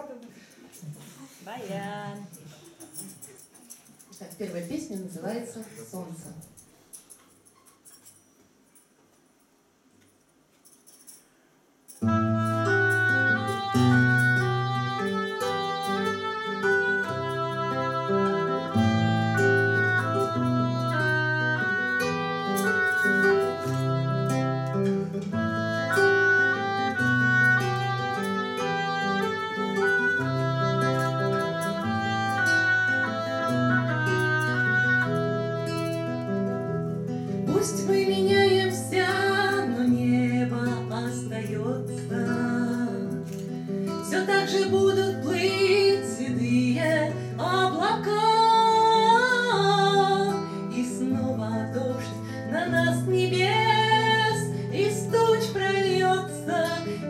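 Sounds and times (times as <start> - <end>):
acoustic guitar: 0.0 - 57.0
woodwind: 12.1 - 36.9
woman singing: 37.5 - 43.4, 44.0 - 57.0.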